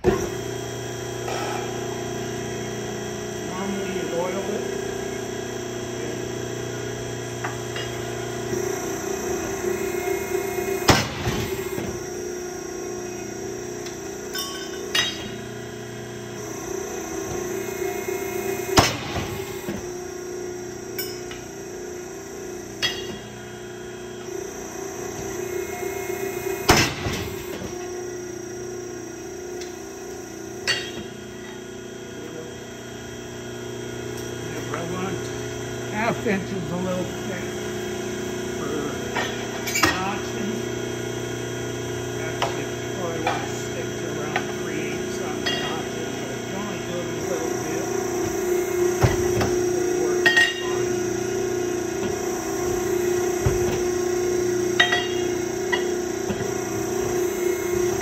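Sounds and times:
hydraulic pump hum: 0:00.0 - 0:58.0
machine stroke clunk: 0:07.4 - 0:12.1, 0:16.5 - 0:19.9.

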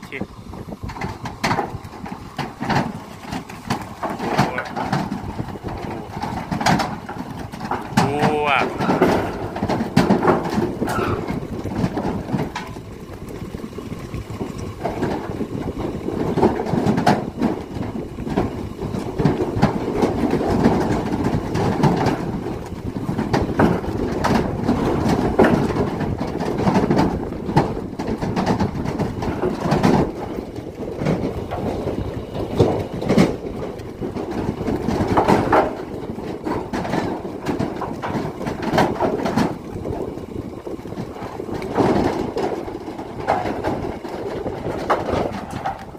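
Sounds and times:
hooves clattering on trailer floor: 0:00.0 - 0:45.9.

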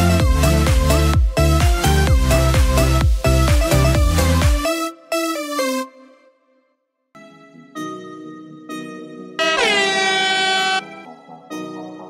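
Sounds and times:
electronic background music: 0:07.2 - 0:12.0
air horn: 0:09.4 - 0:11.2.

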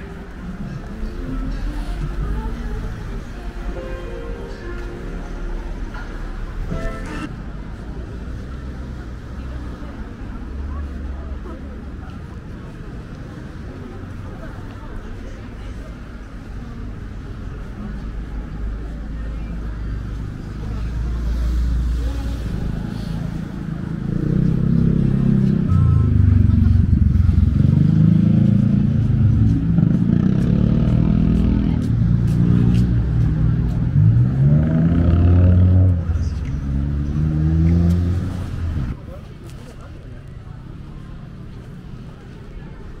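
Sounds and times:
vehicle engine revving: 0:21.8 - 0:39.0.

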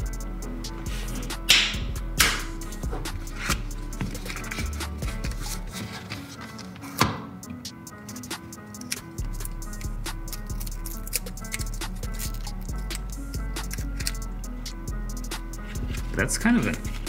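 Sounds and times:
background music: 0:00.0 - 0:17.0
cardboard box rasping and scraping: 0:02.9 - 0:06.9.

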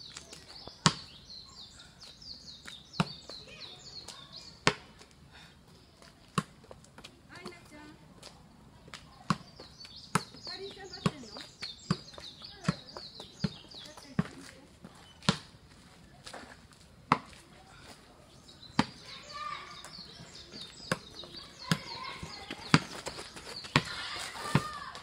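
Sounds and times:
soccer ball kicks: 0:15.2 - 0:15.5, 0:17.1 - 0:17.4, 0:20.1 - 0:25.0.

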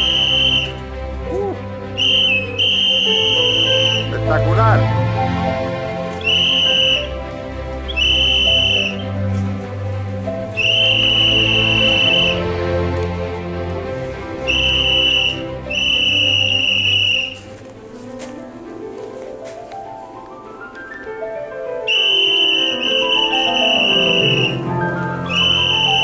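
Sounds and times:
whistle blasts: 0:00.0 - 0:00.8, 0:02.0 - 0:04.2, 0:06.2 - 0:07.2, 0:07.9 - 0:09.2, 0:10.5 - 0:12.5, 0:14.4 - 0:17.4, 0:21.9 - 0:26.0.

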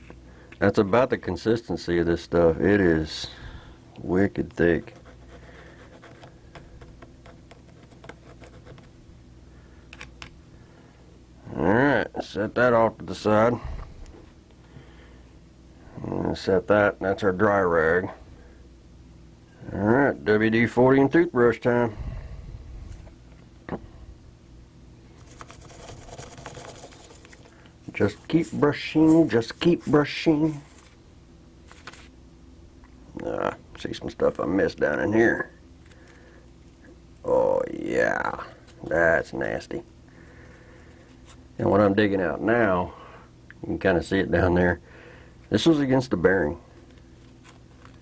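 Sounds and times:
faint steady hum: 0:00.0 - 0:48.0
person speaking: 0:00.6 - 0:06.3, 0:25.2 - 0:31.0, 0:33.1 - 0:35.6, 0:37.2 - 0:39.9
toothbrush scrubbing plastic: 0:25.2 - 0:27.6.

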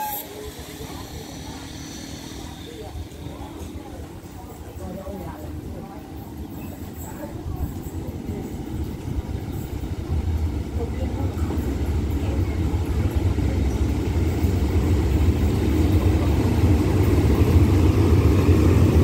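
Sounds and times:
locomotive engine rumble: 0:00.0 - 0:19.0.

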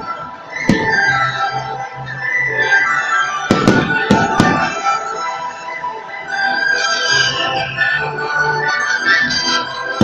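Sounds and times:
music with held tones: 0:00.0 - 0:10.0
firecracker bangs: 0:00.7 - 0:01.2, 0:03.5 - 0:05.0.

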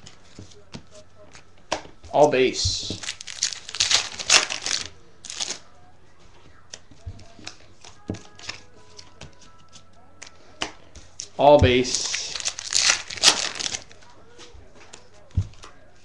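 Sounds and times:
trading cards rustling: 0:01.3 - 0:05.7, 0:06.7 - 0:15.8
cards clicking: 0:06.7 - 0:11.3, 0:11.9 - 0:14.0.

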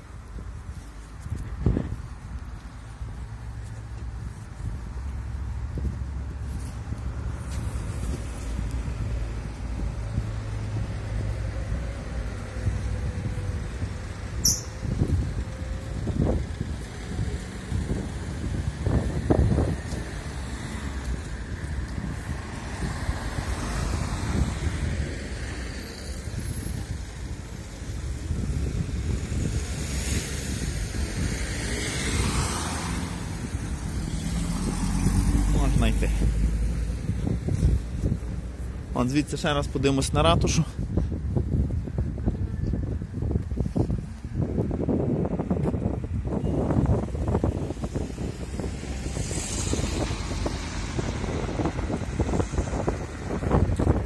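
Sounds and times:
cars driving past: 0:01.6 - 0:40.8, 0:44.4 - 0:54.0
car passing close: 0:29.4 - 0:38.6, 0:46.6 - 0:54.0.

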